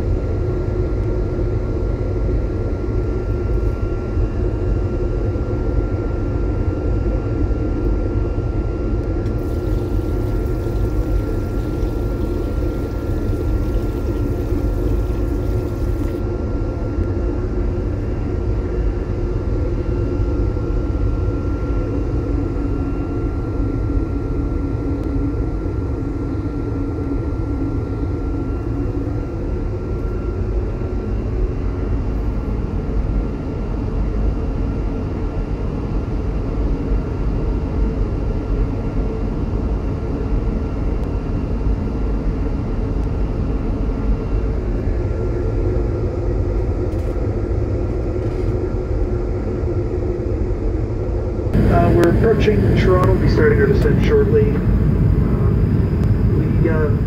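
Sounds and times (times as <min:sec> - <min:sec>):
airplane cabin cruise noise: 0:09.0 - 0:16.2, 0:51.4 - 0:57.0
faint high whine: 0:09.2 - 0:16.2, 0:51.5 - 0:57.0.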